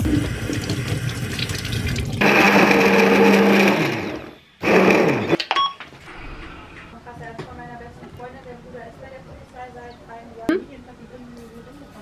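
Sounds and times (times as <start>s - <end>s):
kitchen tap running: 0.0s - 4.2s
electric blender running: 2.2s - 5.4s.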